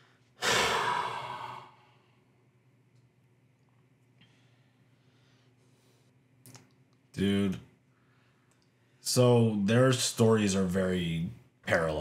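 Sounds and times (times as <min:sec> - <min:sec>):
person sighing heavily: 0:00.4 - 0:02.1.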